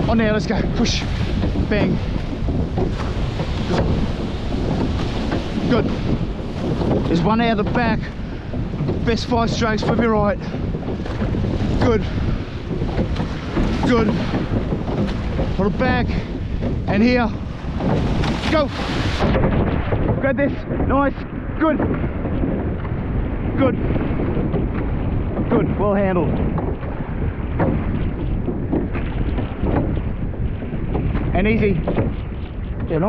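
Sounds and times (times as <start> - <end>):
water rushing and splashing: 0.0 - 33.0
wind on microphone: 0.0 - 33.0.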